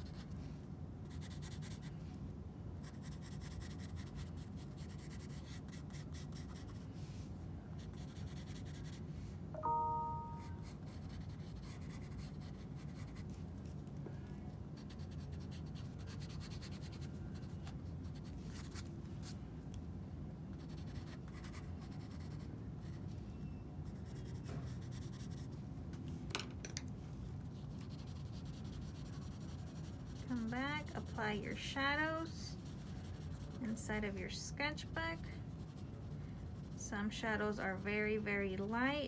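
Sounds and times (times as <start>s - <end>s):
low room hum: 0.0s - 39.0s
pencil scratching on paper: 1.0s - 1.9s, 2.8s - 6.8s, 7.8s - 9.0s, 10.6s - 13.4s, 14.8s - 18.8s, 20.6s - 22.9s, 27.5s - 33.8s, 34.7s - 36.8s.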